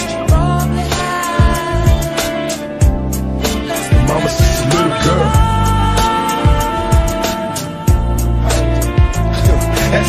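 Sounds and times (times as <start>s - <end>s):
instrumental hip hop beat: 0.0s - 10.0s.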